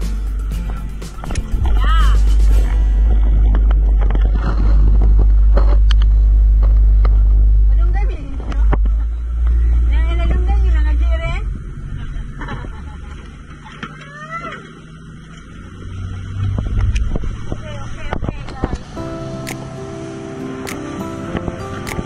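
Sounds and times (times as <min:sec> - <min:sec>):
motorboat engine rumbling: 0:00.0 - 0:22.0.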